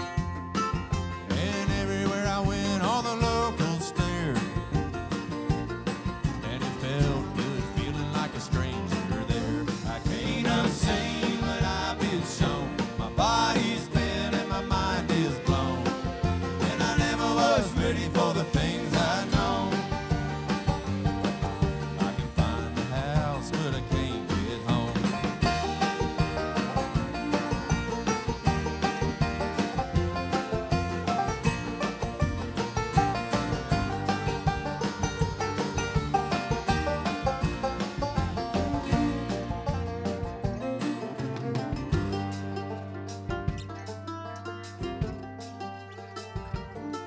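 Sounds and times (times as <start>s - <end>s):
acoustic guitar: 0.0s - 47.0s
banjo picking: 0.0s - 47.0s
bluegrass band music: 0.0s - 47.0s
drums: 0.0s - 47.0s
fiddle: 0.0s - 47.0s
mandolin picking: 0.0s - 47.0s
upright bass: 0.0s - 47.0s.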